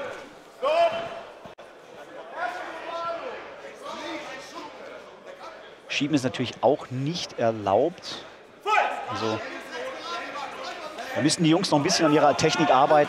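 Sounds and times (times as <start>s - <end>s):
people shouting in a hall: 0.0s - 1.4s, 2.2s - 4.9s, 8.6s - 11.2s, 11.8s - 13.0s.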